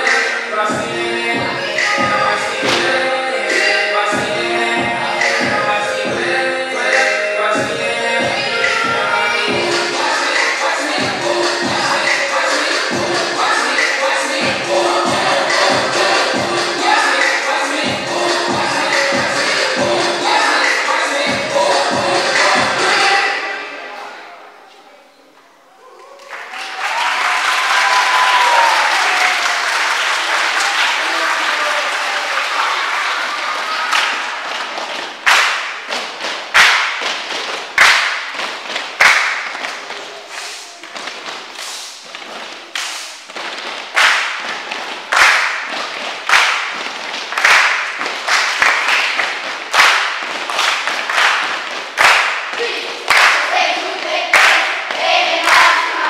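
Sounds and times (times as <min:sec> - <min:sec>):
rhythmic hand-clapping: 0:01.7 - 0:05.7, 0:09.5 - 0:22.9, 0:26.3 - 0:56.0
children cheering and applauding: 0:25.8 - 0:35.2, 0:46.2 - 0:56.0.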